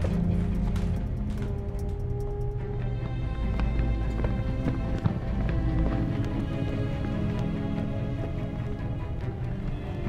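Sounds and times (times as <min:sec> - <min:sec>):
low droning film score: 0:00.0 - 0:10.0.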